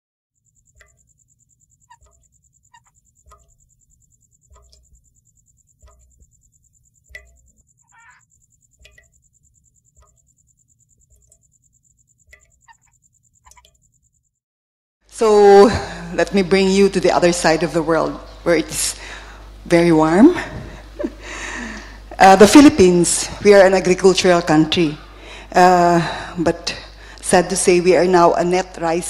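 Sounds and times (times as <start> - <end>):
high-pitched insect trill: 0.4 - 14.4
frog calls: 0.5 - 14.0.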